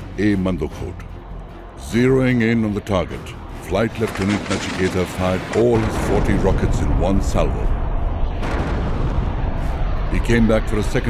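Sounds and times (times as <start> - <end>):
rocket explosions rumbling: 4.0 - 11.0.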